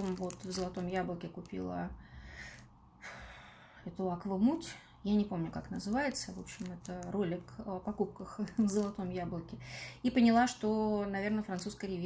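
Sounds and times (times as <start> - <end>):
woman speaking: 0.0 - 2.0, 3.8 - 12.0
woman breathing: 1.9 - 3.9, 9.6 - 10.0.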